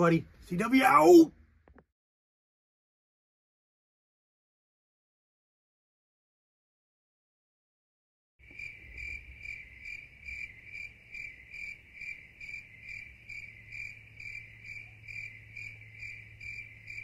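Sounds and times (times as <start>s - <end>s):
cricket chirping: 8.4s - 17.0s
faint low hum: 8.4s - 17.0s.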